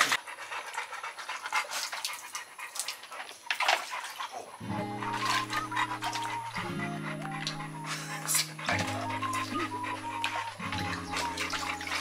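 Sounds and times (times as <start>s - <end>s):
dog panting: 0.0s - 12.0s
music with held notes: 4.6s - 12.0s.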